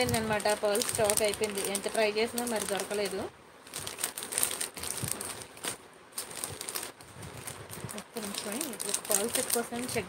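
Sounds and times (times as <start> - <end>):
plastic pouches crinkling: 0.0 - 10.0.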